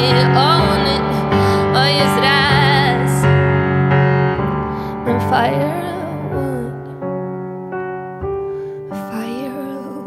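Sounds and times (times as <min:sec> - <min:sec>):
woman singing: 0:00.0 - 0:03.4, 0:05.0 - 0:07.0, 0:09.0 - 0:10.0
grand piano playing chords: 0:00.0 - 0:10.0.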